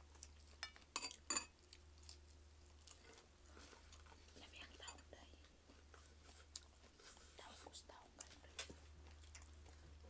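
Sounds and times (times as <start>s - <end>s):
low steady hum: 0.0s - 10.0s
chewing and mouth clicks: 8.2s - 10.0s.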